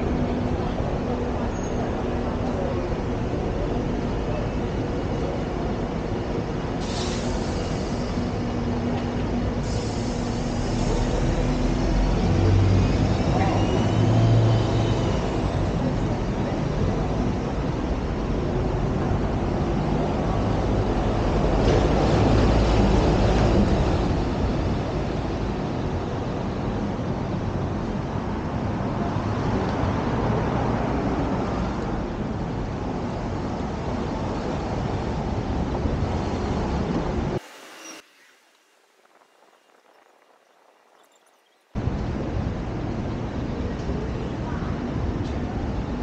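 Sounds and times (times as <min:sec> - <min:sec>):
street traffic: 0:00.0 - 0:46.0
short hisses of air: 0:06.8 - 0:08.2, 0:09.6 - 0:11.0, 0:37.4 - 0:39.3.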